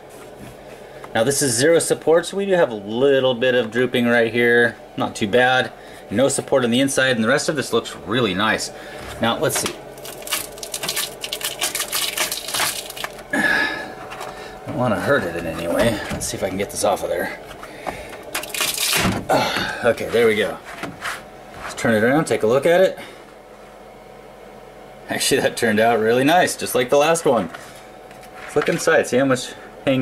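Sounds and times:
background hum and hiss: 0.0 - 30.0.

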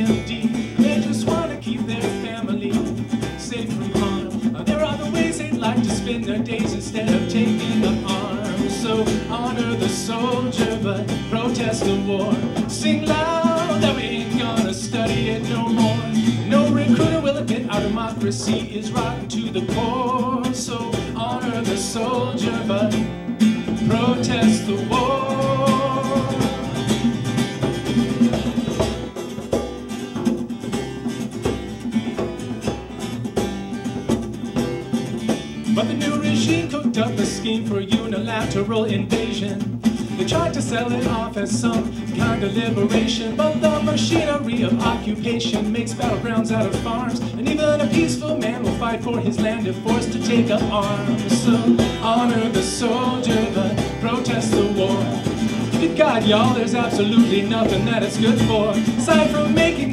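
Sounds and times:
person singing: 0.0 - 23.1, 23.7 - 27.2, 35.7 - 59.9
djembe beat: 0.0 - 59.9
electric bass: 0.0 - 59.9
hand drum: 0.0 - 59.9
strummed acoustic guitar: 0.0 - 59.9.

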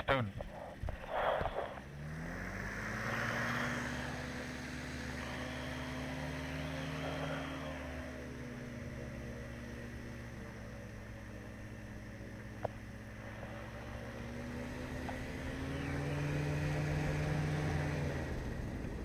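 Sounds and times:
ultralight engine running: 0.0 - 19.0
propeller and wind hiss: 0.7 - 1.9, 2.6 - 19.0.

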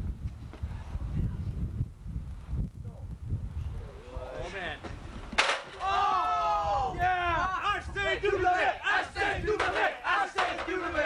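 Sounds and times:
young men yelling and whooping: 5.7 - 11.0.

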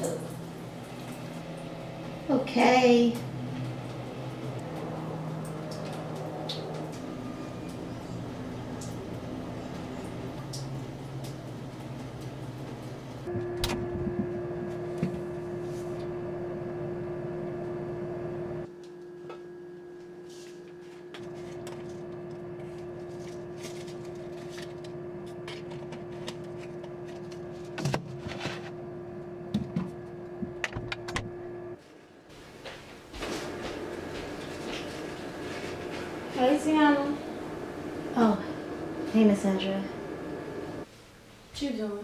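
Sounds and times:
steady electrical hum: 0.0 - 42.0.

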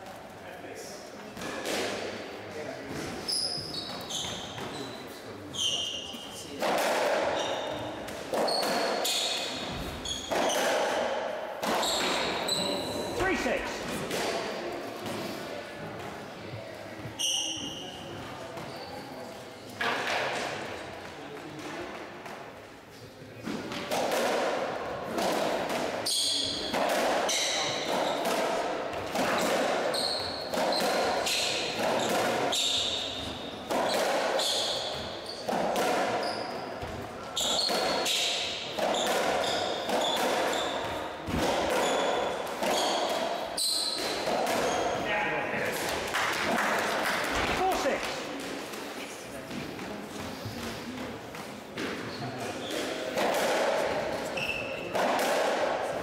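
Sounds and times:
shoe squeaks on court floor: 3.2 - 6.4, 7.2 - 11.0, 11.6 - 13.3, 17.1 - 19.2, 26.0 - 26.7, 27.3 - 28.2, 29.9 - 41.1, 41.7 - 45.0, 52.0 - 53.0, 54.2 - 54.9.

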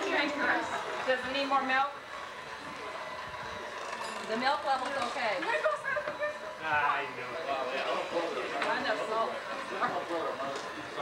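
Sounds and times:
murmur of people talking: 0.0 - 11.0.

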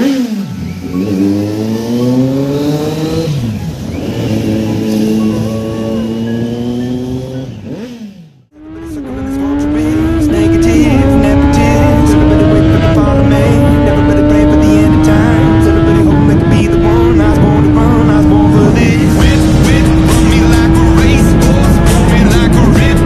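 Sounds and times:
motorcycle engine accelerating: 0.0 - 23.0.

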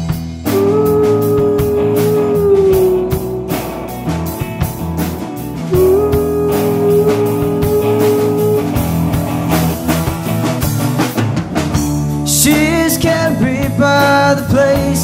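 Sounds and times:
rock band playing instrumental: 0.0 - 15.0.

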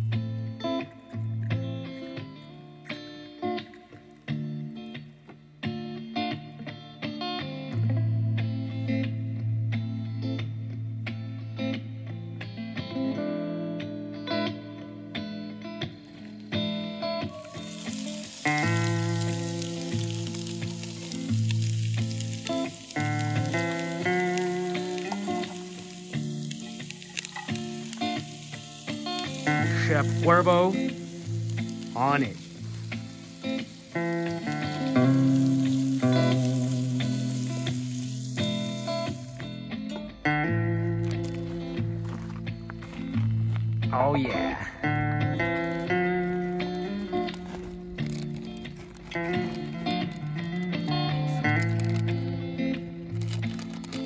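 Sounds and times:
background music: 0.0 - 54.0
vegetables sizzling in oil: 16.3 - 39.7, 45.4 - 52.2, 53.1 - 54.0.

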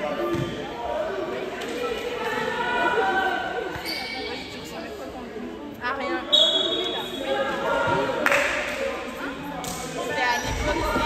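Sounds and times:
players' voices echoing: 0.0 - 11.0.

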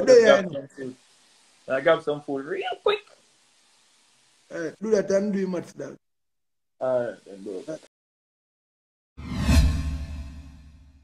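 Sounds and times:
whoosh with deep boom: 9.2 - 11.0.

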